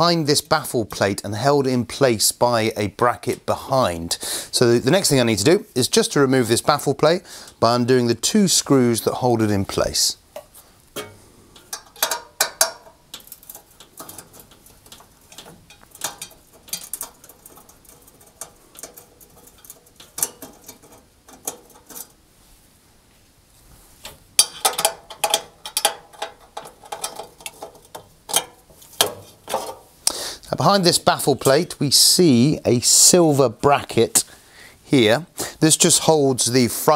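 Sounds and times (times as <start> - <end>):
metal plate clicks and scrapes: 10.4 - 22.2, 24.0 - 29.9.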